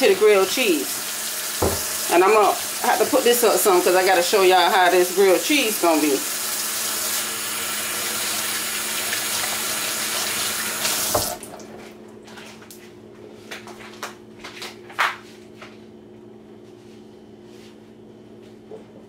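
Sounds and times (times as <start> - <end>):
faucet running into sink: 0.0 - 11.6
faucet shut off knock: 1.5 - 2.4, 10.8 - 11.4.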